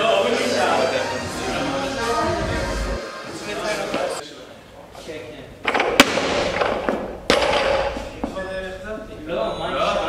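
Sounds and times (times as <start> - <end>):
barbell dropped on floor: 5.7 - 8.0.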